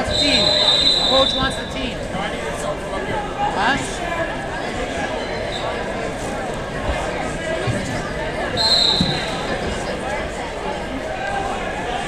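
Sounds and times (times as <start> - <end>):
high whistle blast: 0.0 - 1.6, 8.6 - 9.4
crowd chatter: 0.0 - 12.0.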